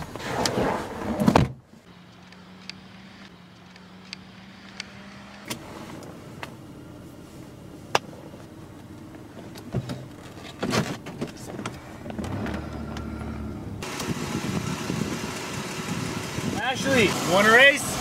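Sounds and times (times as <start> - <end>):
car engine running: 11.2 - 18.0.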